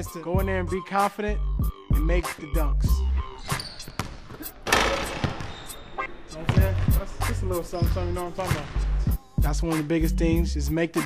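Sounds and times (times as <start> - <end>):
basketball bouncing on hardwood floor: 3.9 - 5.6, 6.5 - 7.0
basketball slamming the rim: 4.0 - 5.6, 6.5 - 7.0.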